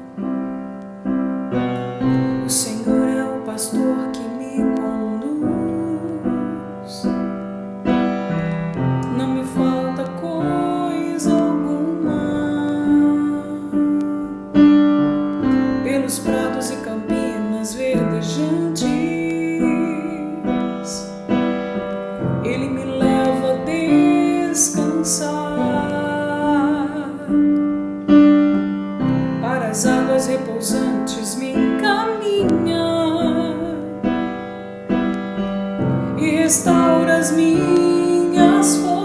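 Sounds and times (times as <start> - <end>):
electronic keyboard piano chords: 0.0 - 39.0
woman singing: 2.2 - 7.4, 8.8 - 14.6, 15.6 - 21.4, 22.2 - 27.8, 29.3 - 34.4, 35.8 - 39.0.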